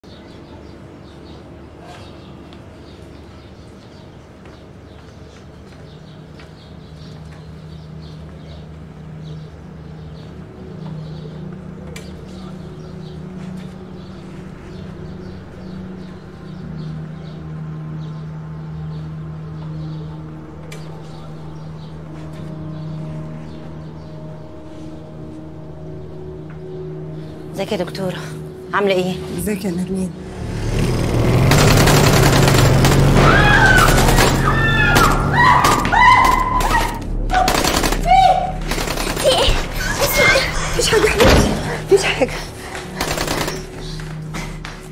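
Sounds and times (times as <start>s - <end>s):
small birds chirping: 0.0s - 37.0s, 38.1s - 44.9s
low steady drone: 0.0s - 44.9s
woman screaming: 33.2s - 38.6s.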